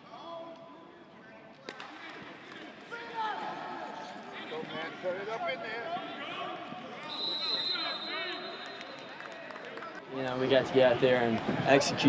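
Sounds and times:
referee's whistle blowing: 7.0 - 9.3.

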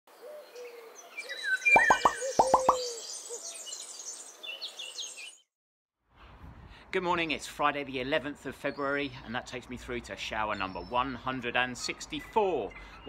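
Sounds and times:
bird chirps: 1.2 - 5.3
rising cartoon pops: 1.8 - 2.9.

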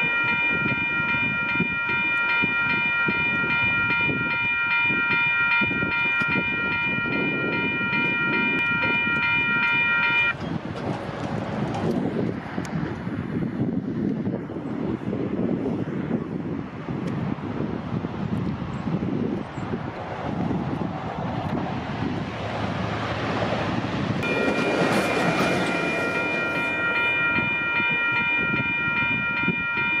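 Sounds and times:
train rumbling on rails: 0.0 - 30.0.

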